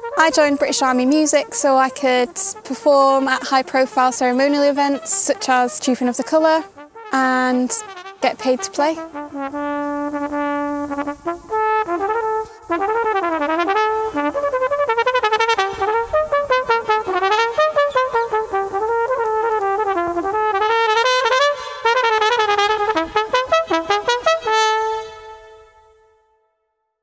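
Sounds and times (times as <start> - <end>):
solo cornet playing: 0.0 - 26.8.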